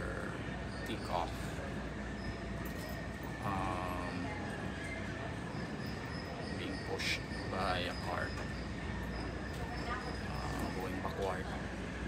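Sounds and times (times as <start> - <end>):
airport terminal hum: 0.0 - 12.0
faint high whine: 0.0 - 12.0.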